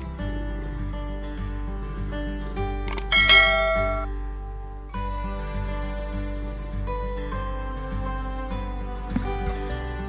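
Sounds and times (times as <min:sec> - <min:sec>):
background music: 0:00.0 - 0:10.0
click: 0:02.8 - 0:03.1
bell-like notification chime: 0:03.1 - 0:04.1.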